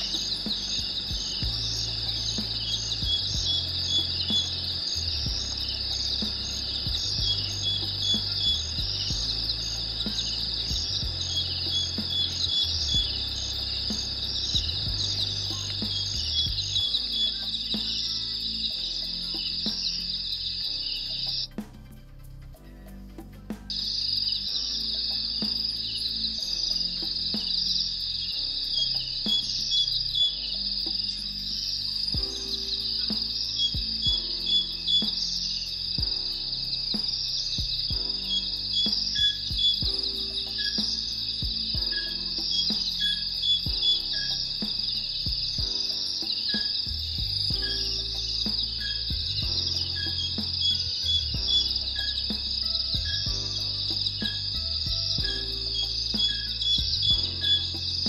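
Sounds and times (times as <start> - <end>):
high-pitched insect chorus: 0.0 - 21.6, 23.6 - 58.0
bird chirping: 0.0 - 22.0, 22.6 - 58.0
soft background music: 0.0 - 58.0.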